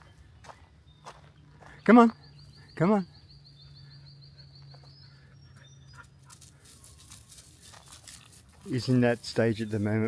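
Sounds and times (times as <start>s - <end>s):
crackles through dry leaf litter: 6.6s - 10.0s.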